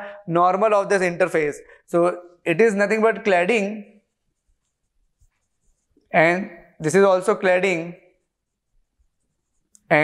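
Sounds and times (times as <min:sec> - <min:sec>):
man speaking: 0:00.0 - 0:04.0, 0:06.1 - 0:08.0.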